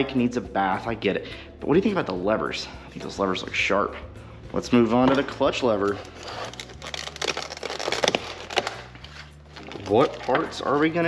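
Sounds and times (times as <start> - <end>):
plastic packaging crackling: 5.8 - 11.0.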